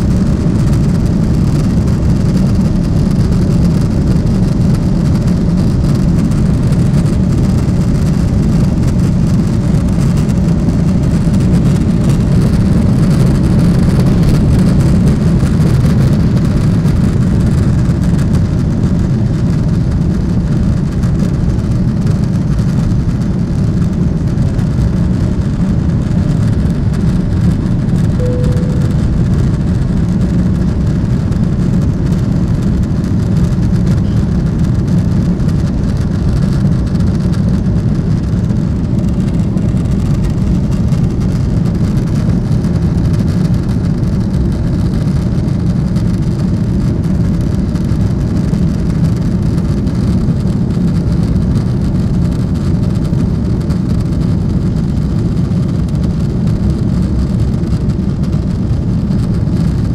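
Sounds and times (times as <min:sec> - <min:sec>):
jet engines rumbling in cabin: 0:00.0 - 0:59.9
short tone: 0:28.2 - 0:29.8.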